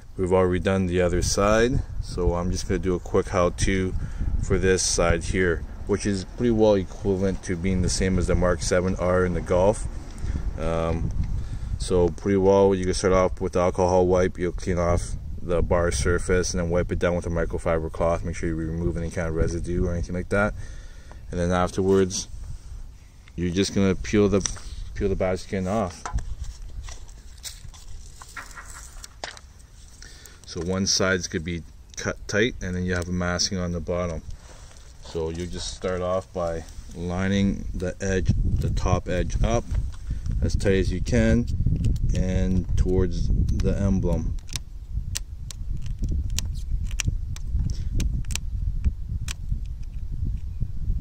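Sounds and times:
wind rumble on microphone: 0:00.0 - 0:29.2, 0:30.7 - 0:51.0
light plastic clicks and crackles: 0:43.5 - 0:48.4.

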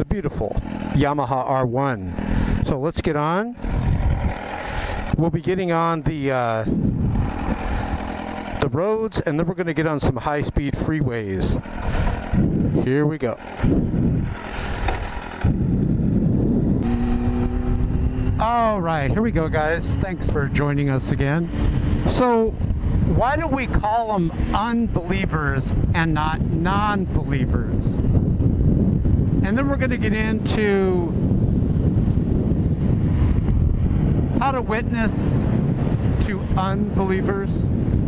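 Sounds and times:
motorcycle accelerating: 0:00.0 - 0:38.0
road noise: 0:00.0 - 0:38.0
wind rushing over microphone: 0:00.0 - 0:38.0.

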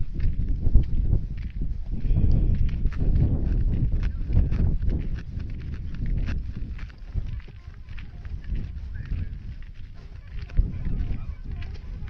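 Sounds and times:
footsteps on concrete: 0:00.0 - 0:12.0
low rumble on microphone: 0:00.0 - 0:12.0.

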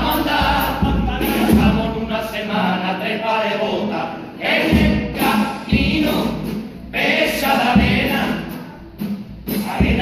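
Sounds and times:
group singing in unison: 0:00.0 - 0:10.0
bass drum beats: 0:07.6 - 0:10.0.

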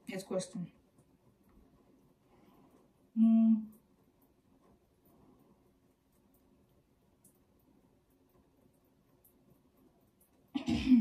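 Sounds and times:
person coughing: 0:10.6 - 0:11.0.

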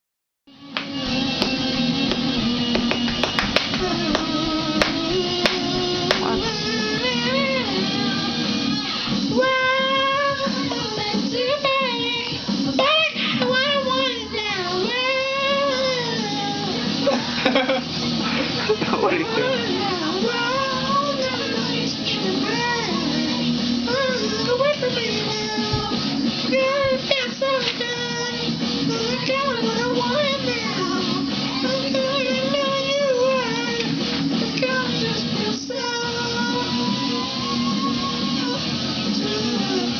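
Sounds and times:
music: 0:00.5 - 0:39.9
high voice singing: 0:00.6 - 0:39.9.

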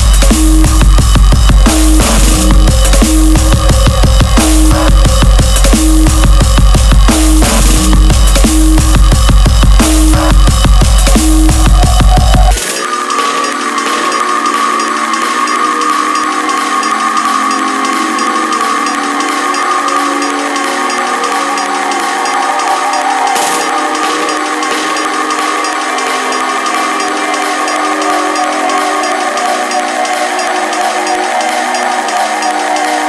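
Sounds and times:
sustained synth drone: 0:00.0 - 0:33.0.

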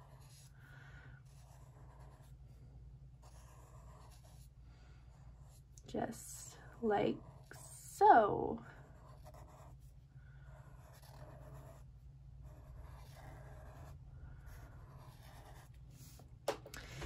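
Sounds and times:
marker scratching on paper: 0:00.0 - 0:00.6, 0:01.2 - 0:02.4, 0:03.2 - 0:04.5, 0:08.8 - 0:16.2
low steady hum: 0:00.0 - 0:17.0.

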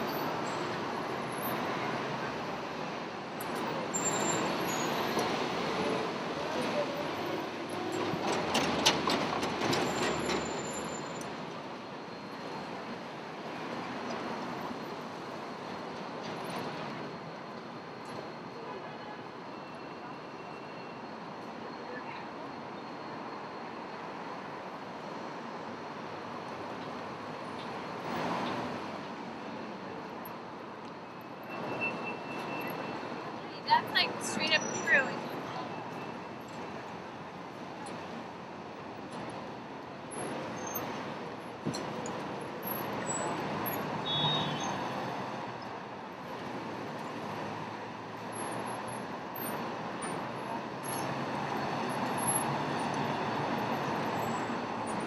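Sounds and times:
traffic noise: 0:00.0 - 0:55.0.

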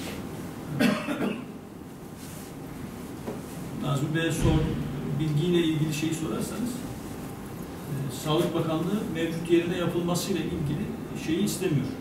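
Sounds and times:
low room noise: 0:00.0 - 0:12.0
person coughing: 0:00.8 - 0:01.5.

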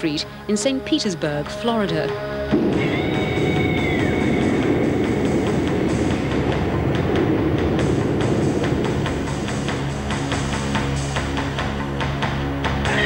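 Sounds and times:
dramatic soundtrack music: 0:00.0 - 0:13.0
fire burning rumble: 0:02.5 - 0:12.8.

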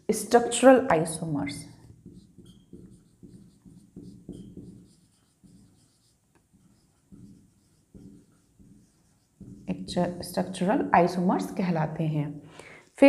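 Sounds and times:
marker pen writing on whiteboard: 0:00.8 - 0:10.6.

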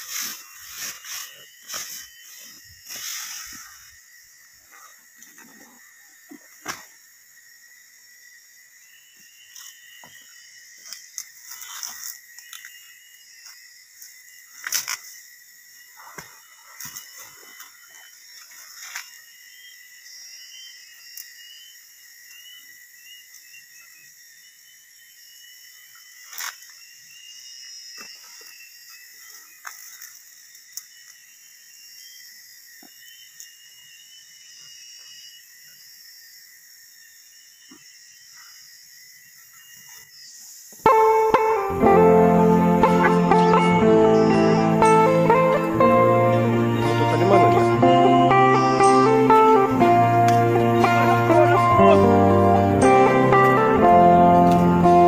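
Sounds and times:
footsteps in leaf litter: 0:00.0 - 0:03.8
high insect drone: 0:00.0 - 0:55.0.

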